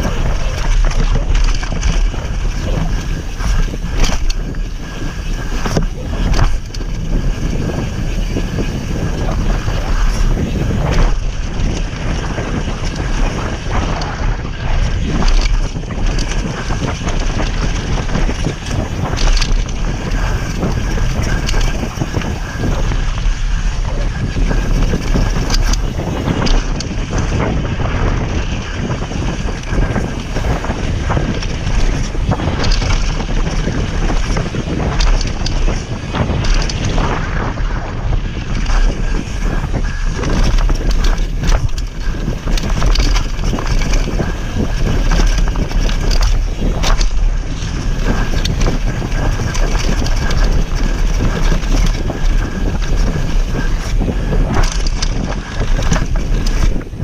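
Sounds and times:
bike rattling over bumps: 0.0s - 57.0s
bike tyres rumbling: 0.0s - 57.0s
wind buffeting microphone: 0.0s - 57.0s.

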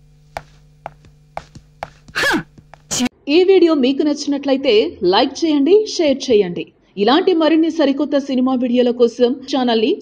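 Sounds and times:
woman talking: 2.9s - 10.0s.

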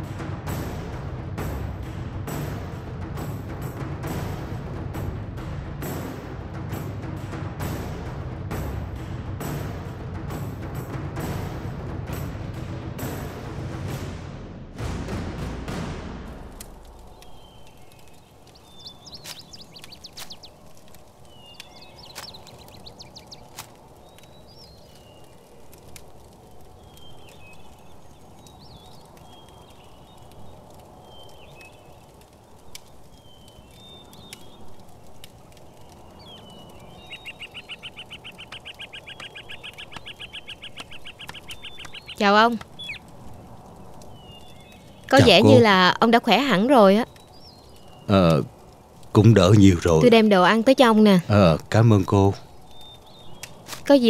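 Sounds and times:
bird chirps and trills: 17.0s - 20.6s, 21.2s - 25.4s, 26.8s - 48.2s, 51.8s - 54.0s
low background noise: 40.6s - 54.0s.

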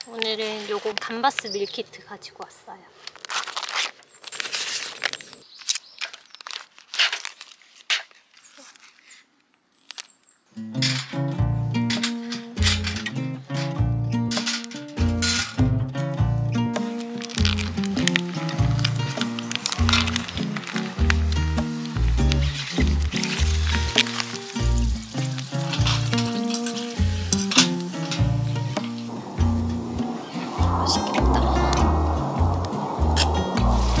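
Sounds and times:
plastic pouch crinkling: 3.0s - 10.2s, 16.8s - 28.1s.

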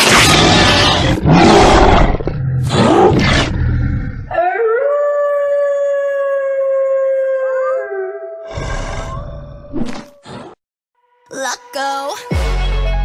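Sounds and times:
rough growls: 0.0s - 4.6s, 8.4s - 10.6s
werewolf howl: 4.3s - 9.7s.

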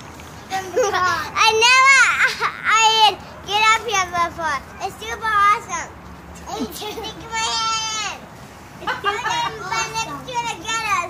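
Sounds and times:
child calling out excitedly: 0.5s - 5.9s.

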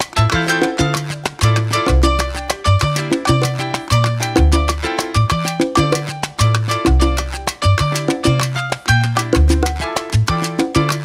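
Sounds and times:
instrumental salsa music: 0.0s - 11.0s.

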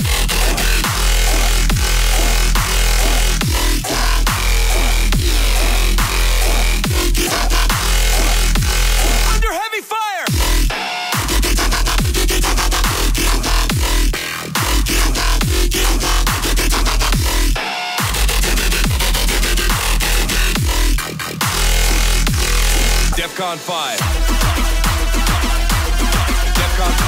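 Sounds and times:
heavy sub-bass: 0.0s - 9.5s, 10.3s - 23.4s, 24.0s - 27.0s
loud dubstep music: 0.0s - 27.0s.

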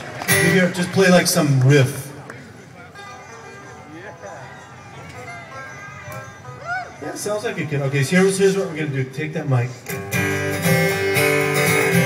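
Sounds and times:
crowd voices: 0.0s - 12.0s
distant banjo riff: 3.0s - 8.3s.

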